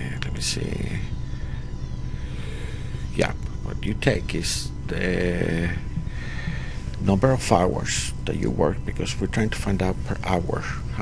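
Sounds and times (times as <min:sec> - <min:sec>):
low rumbling hum: 0:00.0 - 0:11.0.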